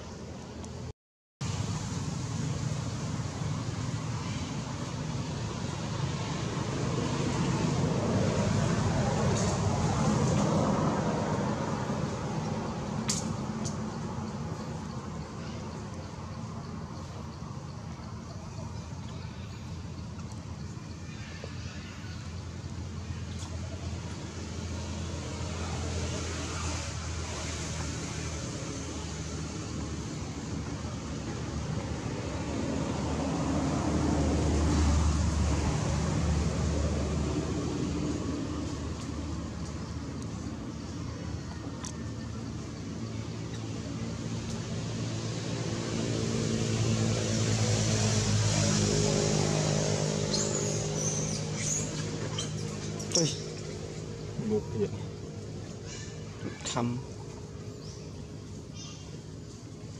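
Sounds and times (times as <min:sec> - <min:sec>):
vehicle engines droning: 0:00.0 - 0:59.9.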